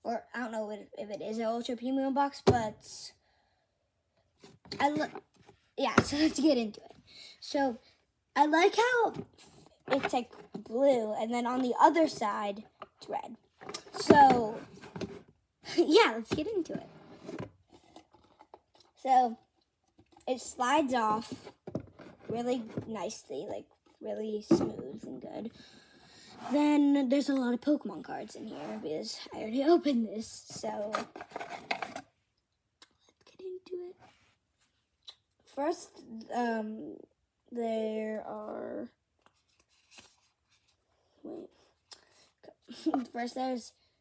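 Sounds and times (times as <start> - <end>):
cardboard scraping on cardboard: 26.3 - 26.6, 30.9 - 32.0
rustling of cards in box: 30.9 - 32.0, 39.3 - 40.8.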